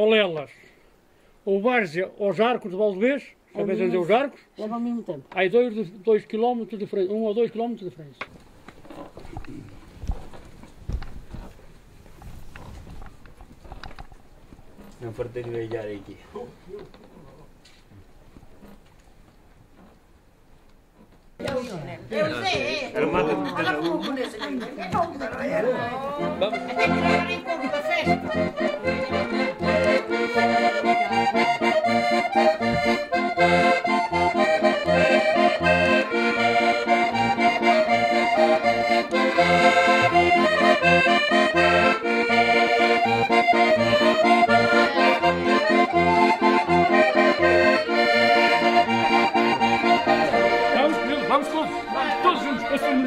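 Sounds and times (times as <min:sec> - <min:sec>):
button accordion playing: 0:25.6 - 0:53.0.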